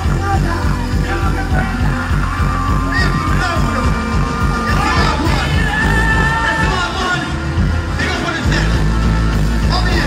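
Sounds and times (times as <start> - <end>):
heavy bass line: 0.0 - 10.0
live dancehall music: 0.0 - 10.0.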